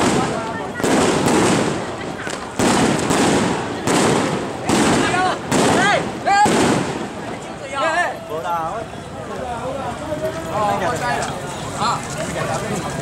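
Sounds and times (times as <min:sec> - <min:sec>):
firecrackers crackling: 0:00.0 - 0:13.0.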